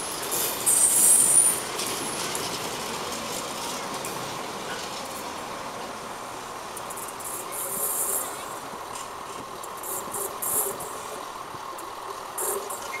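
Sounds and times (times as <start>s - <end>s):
distant train rail noise: 0.0s - 13.0s.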